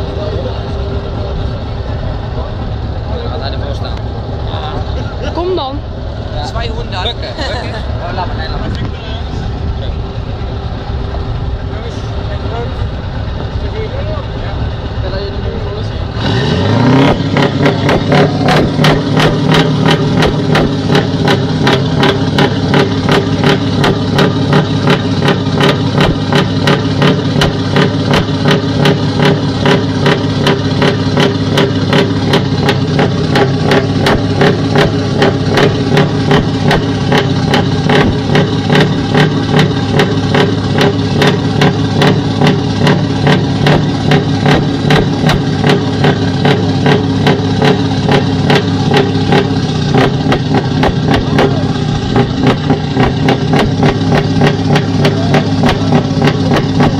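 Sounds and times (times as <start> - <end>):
truck diesel engine idling: 0.0 - 56.9.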